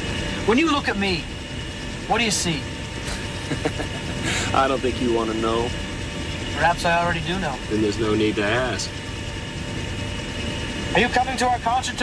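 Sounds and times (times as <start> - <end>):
helicopter engine and rotor drone: 0.0 - 12.0.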